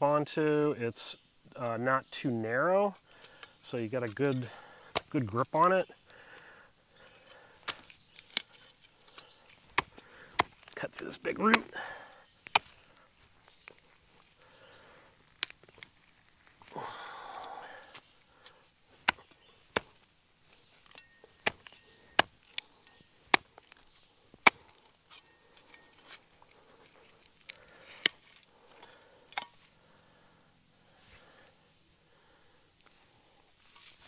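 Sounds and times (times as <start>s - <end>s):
shovel blade chopping into soil: 9.1s - 10.8s, 11.4s - 11.8s, 12.4s - 12.8s, 19.0s - 20.0s, 20.8s - 22.7s, 24.4s - 25.2s.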